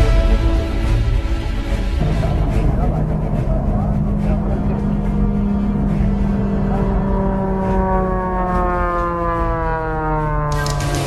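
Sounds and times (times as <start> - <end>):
propeller plane engine passing: 2.0 - 11.0.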